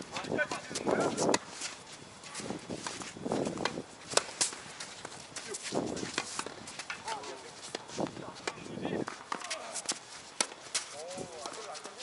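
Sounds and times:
players' footsteps: 0.0 - 12.0
tennis ball hit by rackets: 2.4 - 11.6.

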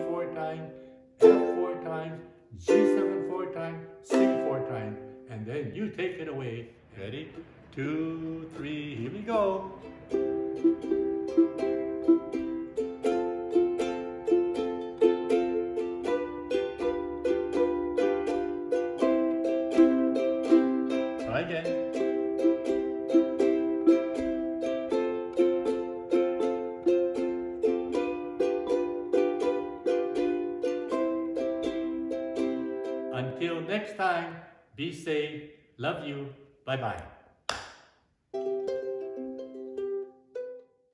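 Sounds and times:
ukulele picking: 0.0 - 6.4, 7.2 - 33.8, 38.3 - 40.9.

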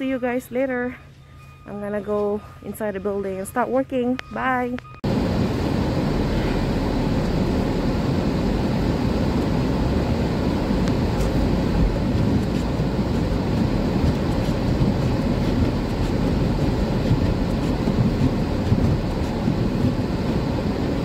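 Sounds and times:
car engine rumble: 3.9 - 21.0.

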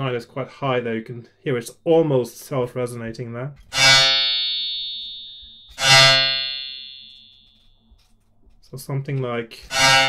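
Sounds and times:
synthesized bowed string note: 3.7 - 7.7, 9.6 - 10.0.

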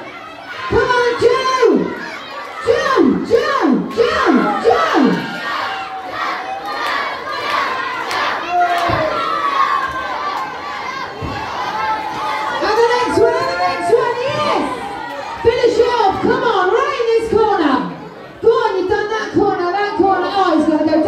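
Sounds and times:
crowd shouting and cheering: 0.0 - 21.0
loud falling shouts: 4.0 - 12.6.

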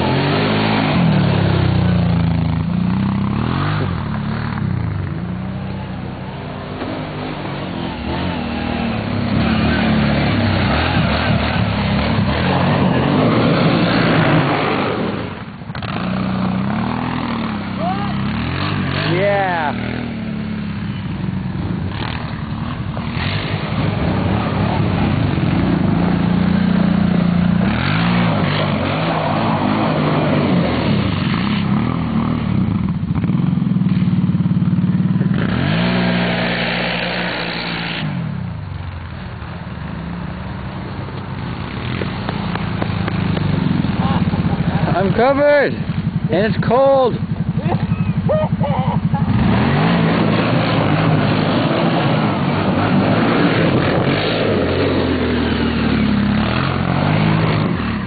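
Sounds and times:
atv engines revving: 0.0 - 58.0.

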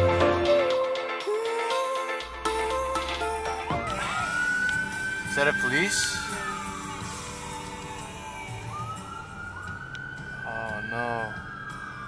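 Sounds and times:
emergency siren wailing: 3.0 - 12.0.

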